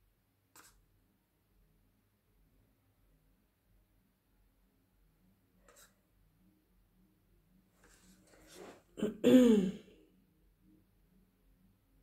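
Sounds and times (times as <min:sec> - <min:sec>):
woman clearing her throat: 0:09.0 - 0:09.9.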